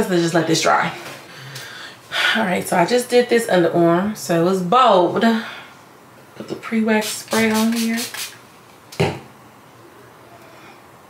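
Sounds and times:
spray bottle spritz: 7.0 - 8.4.

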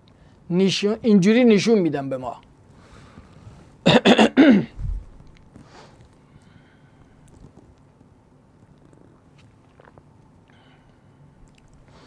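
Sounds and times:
man coughing: 3.8 - 4.8.

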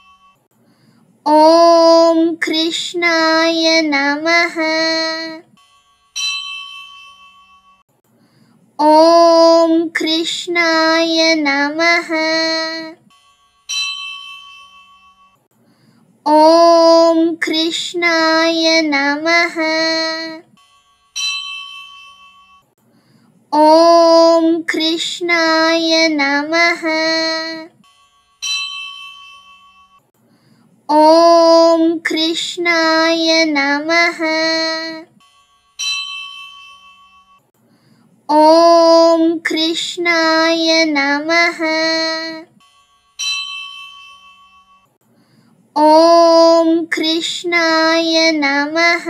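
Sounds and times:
bell ringing: 0.0 - 0.4, 5.6 - 7.8, 13.0 - 15.4, 20.6 - 22.7, 27.8 - 30.0, 35.2 - 37.4, 42.6 - 44.9
person chanting: 1.3 - 5.4, 8.8 - 13.0, 16.3 - 20.4, 23.6 - 27.7, 30.9 - 35.1, 38.3 - 42.5, 45.8 - 49.0.

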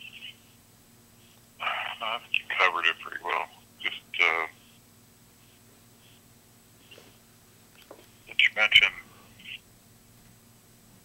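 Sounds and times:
voice through phone speaker: 1.6 - 4.6, 8.3 - 9.6.

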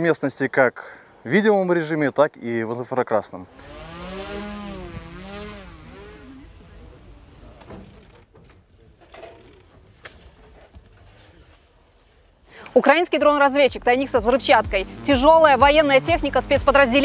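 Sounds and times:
drone propellers whining: 3.5 - 6.5.

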